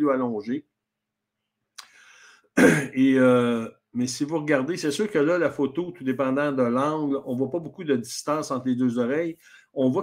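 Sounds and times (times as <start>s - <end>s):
man clearing throat: 2.6s - 3.1s.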